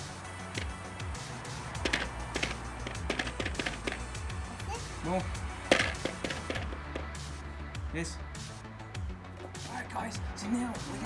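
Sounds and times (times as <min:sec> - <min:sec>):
background music: 0:00.0 - 0:11.0
plastic shaker tapping: 0:01.8 - 0:04.1, 0:05.7 - 0:07.1.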